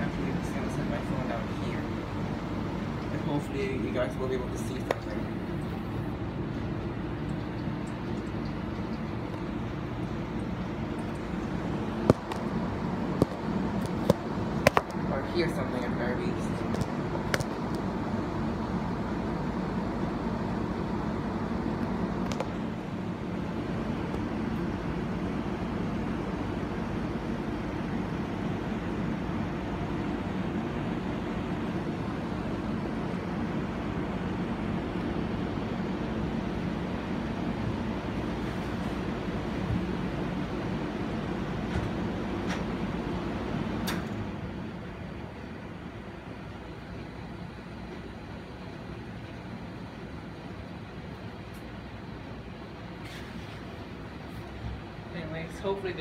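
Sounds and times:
air conditioner humming: 0.0 - 56.0.

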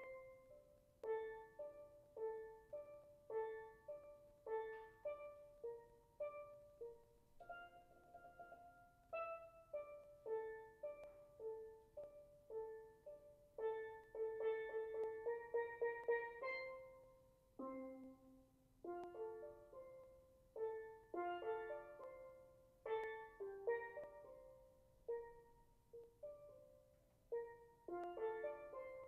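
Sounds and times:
steel pan melody: 0.0 - 29.0.

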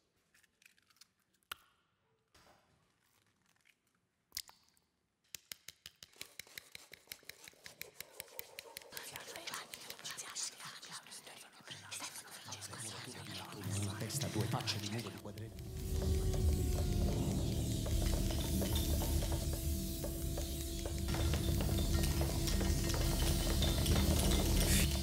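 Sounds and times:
fork beating eggs: 5.9 - 25.0
taps and knocks: 14.4 - 25.0.

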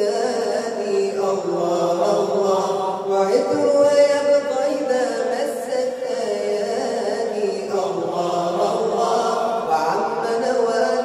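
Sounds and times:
man singing chant-like melody: 0.0 - 11.0.

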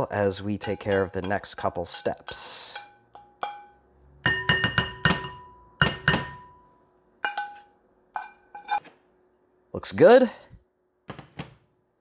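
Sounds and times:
wooden spoon knocking frying pan: 0.6 - 6.5.

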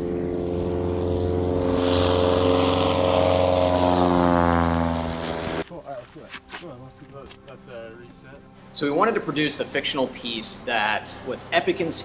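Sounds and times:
light plane engine drone: 0.0 - 5.6.

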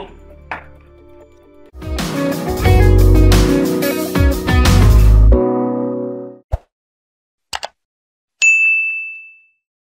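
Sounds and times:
bell-like notification ding: 8.4 - 9.6.

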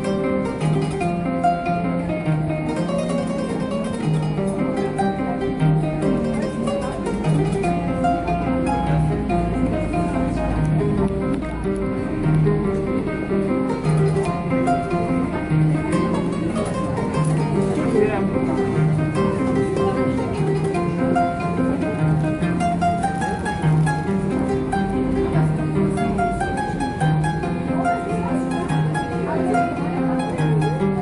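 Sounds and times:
kora plucked melody: 0.0 - 31.0.

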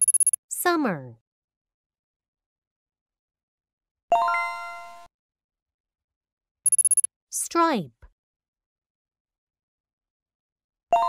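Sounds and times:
electronic chime: 0.0 - 0.4, 6.7 - 7.1
rapid high beeps: 0.0 - 0.4, 6.7 - 7.1.

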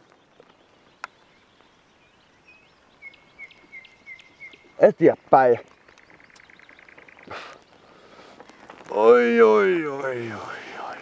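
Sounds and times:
songbird chirping and trilling: 0.0 - 11.0.

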